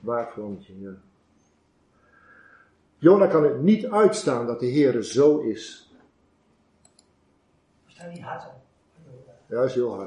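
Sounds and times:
faint short clicks: 0:06.8 - 0:07.1.

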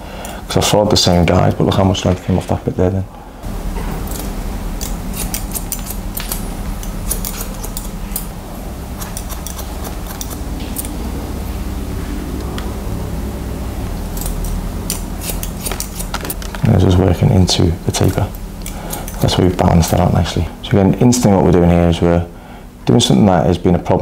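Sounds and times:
scissors snipping hair: 0:04.1 - 0:08.3, 0:09.0 - 0:11.0, 0:14.2 - 0:16.4, 0:17.9 - 0:20.1.

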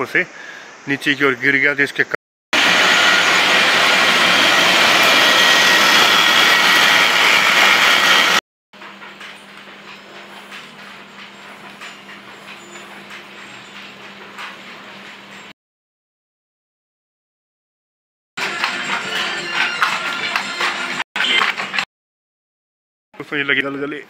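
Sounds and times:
textile machinery running: 0:02.6 - 0:15.5, 0:18.4 - 0:21.8.

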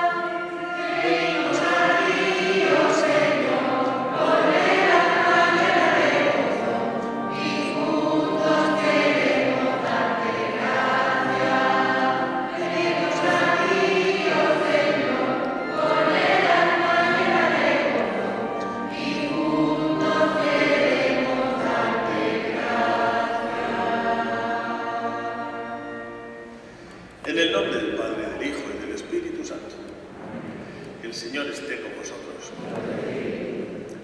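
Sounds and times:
church choir singing a hymn: 0:00.0 - 0:29.5, 0:30.1 - 0:34.0
electric keyboard accompaniment: 0:00.0 - 0:34.0.

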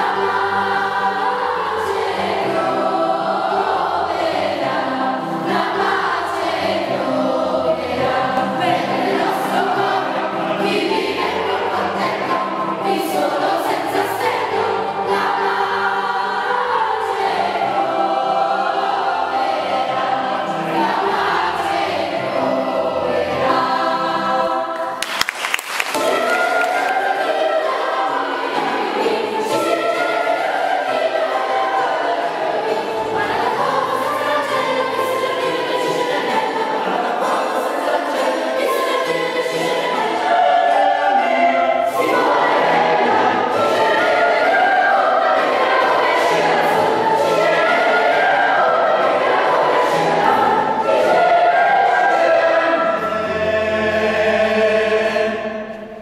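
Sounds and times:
children's choir singing: 0:00.0 - 0:56.0.

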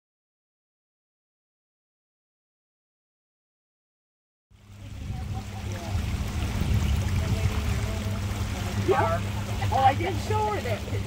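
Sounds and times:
outboard motor running: 0:04.6 - 0:11.0
water washing along hull: 0:04.6 - 0:11.0.

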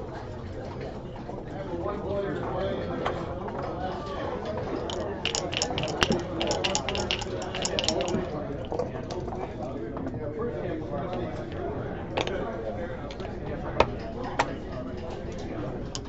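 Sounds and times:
low room chatter: 0:00.0 - 0:16.0
dice rattling in a cup: 0:04.8 - 0:08.9.

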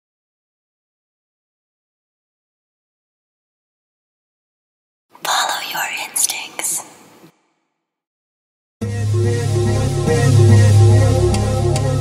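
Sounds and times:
person whispering: 0:05.2 - 0:07.0.

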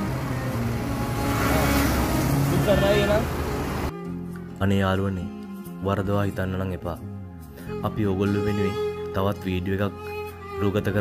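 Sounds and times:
passing traffic road noise: 0:00.0 - 0:04.0.

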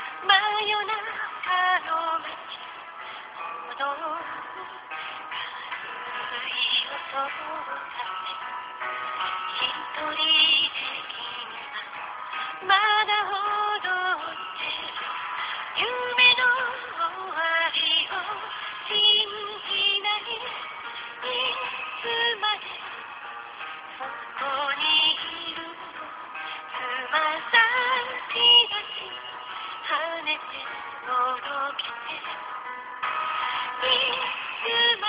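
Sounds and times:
woman singing over instrumental music: 0:00.0 - 0:02.6, 0:03.6 - 0:08.5, 0:09.5 - 0:12.0, 0:12.6 - 0:23.0, 0:24.0 - 0:32.6, 0:33.6 - 0:35.0.

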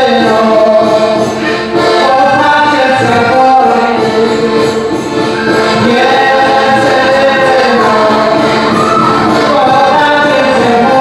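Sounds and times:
group singing a song: 0:00.0 - 0:11.0.

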